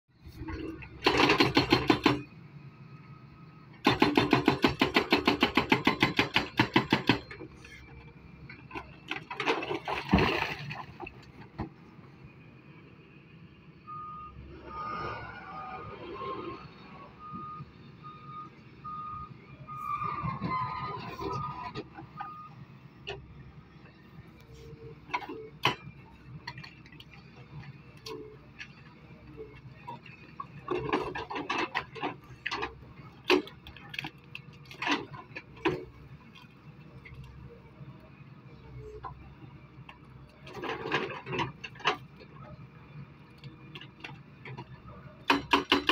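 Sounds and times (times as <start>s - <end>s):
hydraulic breaker hammering rock: 1.0s - 2.3s, 3.8s - 7.3s, 45.2s - 45.9s.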